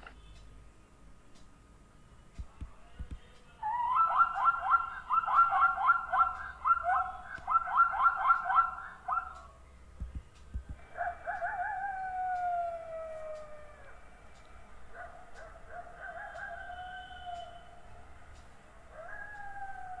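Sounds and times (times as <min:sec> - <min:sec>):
zebra yelping barks: 0:03.6 - 0:09.6, 0:10.9 - 0:14.0, 0:14.9 - 0:17.7
low thuds: 0:10.0 - 0:10.8
hyena whoop: 0:11.0 - 0:14.0, 0:16.3 - 0:17.8, 0:18.9 - 0:20.0.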